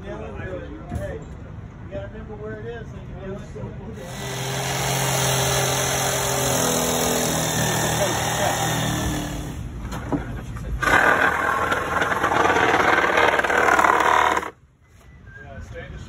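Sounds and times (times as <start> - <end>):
loud harsh noise: 4.0 - 9.6, 10.8 - 14.6
electric jigsaw cutting plywood: 4.1 - 9.6, 10.8 - 14.6.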